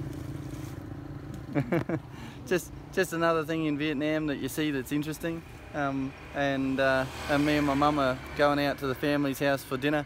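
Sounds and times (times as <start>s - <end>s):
vehicle engine humming: 0.0s - 10.0s
man laughing: 1.4s - 2.3s.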